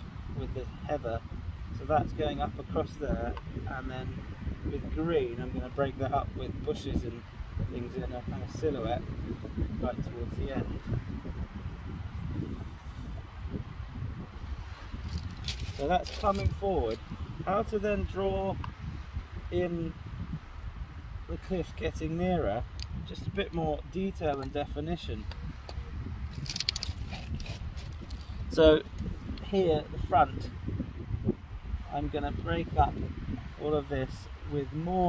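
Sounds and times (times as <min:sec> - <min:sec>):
wind buffeting microphone: 0:00.0 - 0:35.0
small clicks and scratches: 0:15.1 - 0:16.5, 0:25.3 - 0:28.2.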